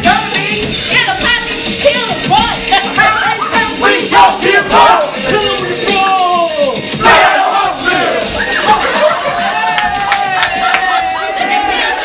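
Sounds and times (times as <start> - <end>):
hip-hop backing track: 0.0 - 12.0
group shouting and yelling: 3.0 - 12.0.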